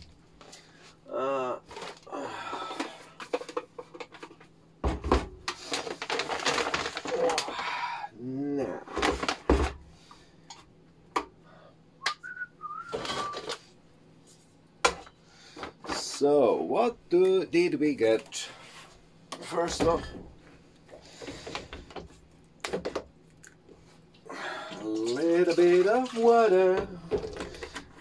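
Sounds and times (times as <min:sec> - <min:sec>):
short whistle: 0:12.0 - 0:13.4.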